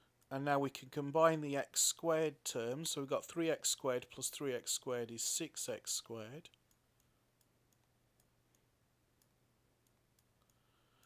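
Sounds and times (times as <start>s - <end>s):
faint irregular clicks: 6.5s - 11.0s.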